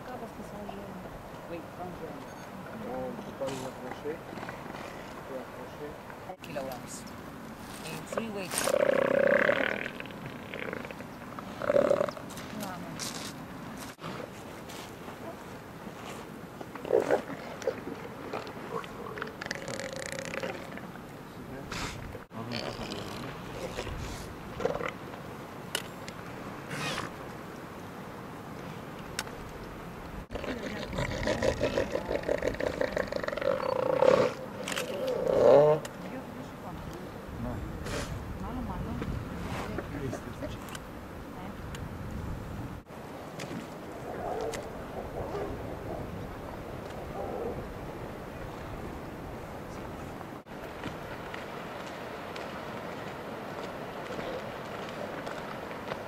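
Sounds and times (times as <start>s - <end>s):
elephant seals calling: 26.7s - 27.1s, 30.3s - 35.9s.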